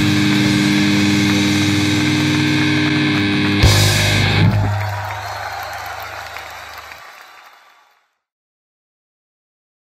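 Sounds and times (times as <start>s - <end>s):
amplifier hum: 0.0s - 4.8s
metal band playing: 0.0s - 6.3s.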